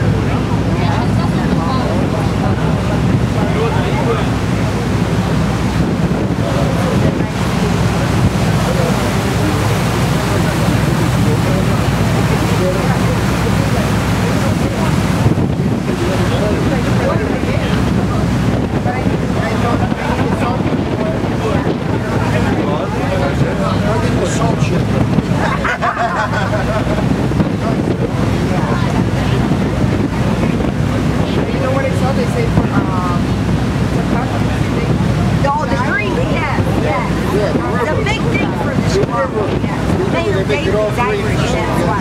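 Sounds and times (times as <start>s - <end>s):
boat engine running: 0.0s - 42.0s
choppy water rushing: 0.0s - 42.0s
wind rumble on microphone: 0.0s - 42.0s.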